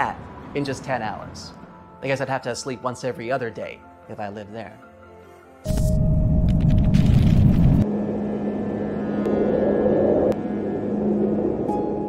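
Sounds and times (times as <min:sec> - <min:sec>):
low drone: 0:05.7 - 0:12.0
deep wind-like rumble: 0:06.0 - 0:12.0.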